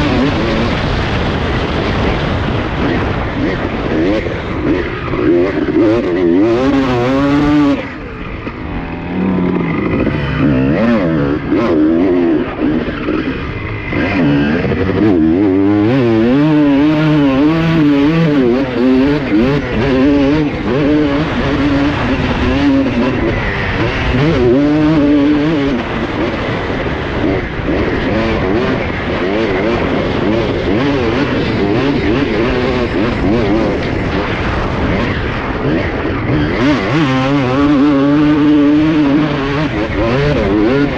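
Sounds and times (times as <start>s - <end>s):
motocross engine revving: 0.0s - 40.9s
rush of wind: 0.0s - 40.9s.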